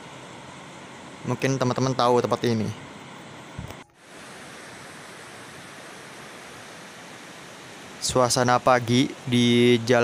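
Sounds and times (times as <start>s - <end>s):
river flowing over rocks: 4.0s - 8.7s.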